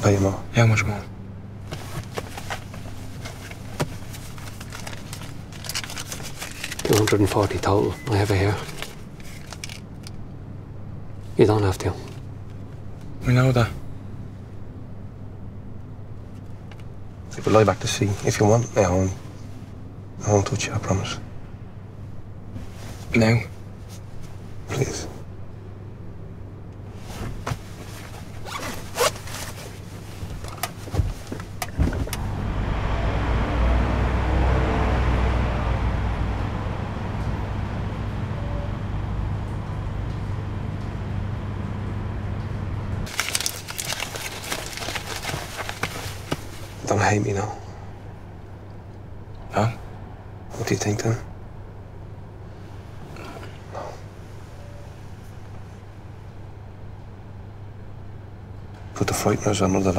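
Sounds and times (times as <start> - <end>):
low steady hum: 0.0 - 59.9
clothing and paper rustling: 1.6 - 10.2, 22.5 - 24.9, 26.9 - 32.1, 43.0 - 47.2.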